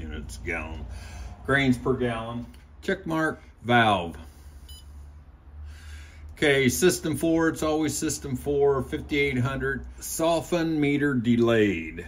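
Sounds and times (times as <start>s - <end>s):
short electronic beep: 4.7s - 5.0s.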